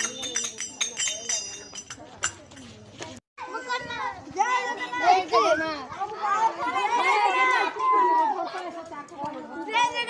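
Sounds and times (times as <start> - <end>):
boys shouting together: 3.4 - 8.8.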